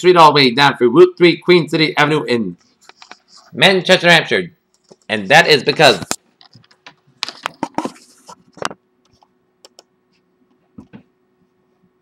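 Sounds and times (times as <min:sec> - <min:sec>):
faint steady hum: 0:00.0 - 0:12.0
computer keyboard tapping: 0:08.6 - 0:09.9.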